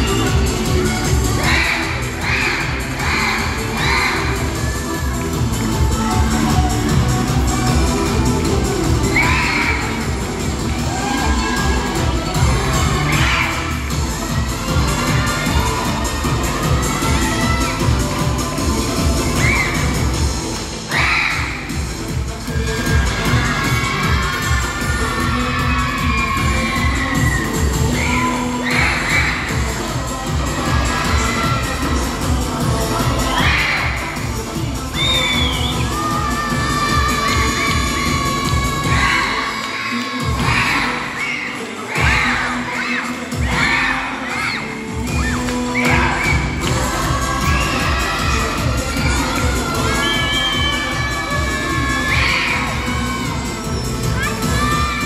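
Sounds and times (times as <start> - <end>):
spectators shouting and cheering: 0.0 - 55.0
upbeat music over sound system: 0.0 - 55.0.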